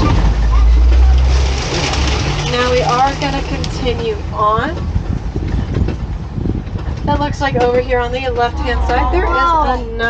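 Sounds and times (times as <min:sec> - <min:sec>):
jolts and rattles: 0:00.0 - 0:04.1
truck rumbling on dirt track: 0:00.0 - 0:10.0.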